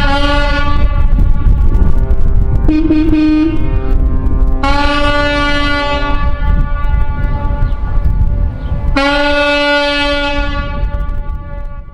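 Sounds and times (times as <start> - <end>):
low rumble: 0.0 - 11.9
ship horns blasting: 0.0 - 11.9.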